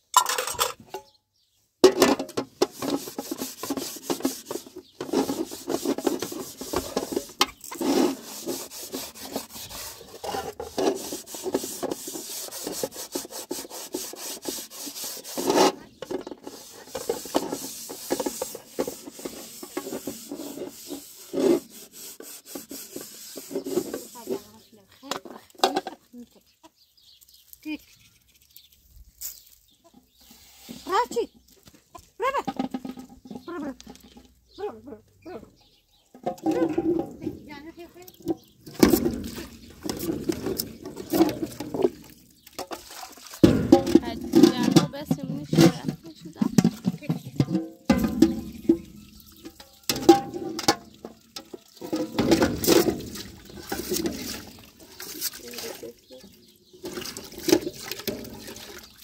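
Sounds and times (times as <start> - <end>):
scrubbing metal pot: 0.1 - 0.9, 1.8 - 26.4, 32.1 - 59.0
pot knocking: 43.4 - 50.9.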